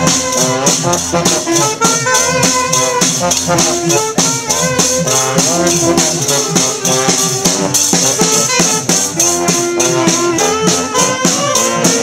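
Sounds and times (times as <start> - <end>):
saxophone: 0.0 - 12.0
snare drum and cymbal beat: 0.0 - 12.0
trombone: 0.0 - 12.0.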